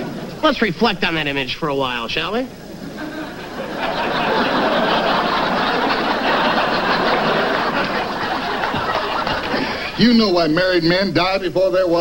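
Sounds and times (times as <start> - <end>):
studio audience laughing: 2.6 - 10.0.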